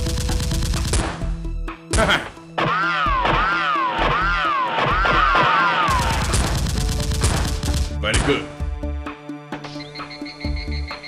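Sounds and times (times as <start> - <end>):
rapid gunfire sound effect: 0.0 - 1.2, 4.8 - 8.0.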